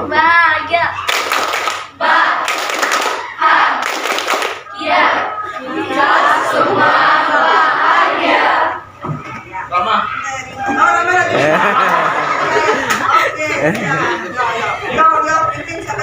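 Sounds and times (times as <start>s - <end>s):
students clapping hands: 1.1s - 3.2s, 3.8s - 4.7s
many voices calling out together: 1.9s - 3.9s, 4.6s - 9.2s.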